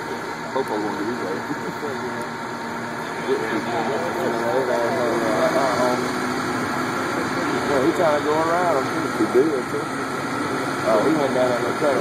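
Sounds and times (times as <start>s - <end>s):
engine idling: 0.0s - 12.0s
indistinct voices talking: 0.0s - 12.0s.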